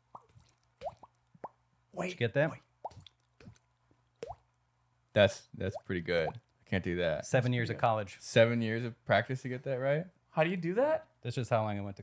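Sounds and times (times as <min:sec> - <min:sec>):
mouth water-drop plops: 0:00.0 - 0:01.6, 0:02.7 - 0:04.6.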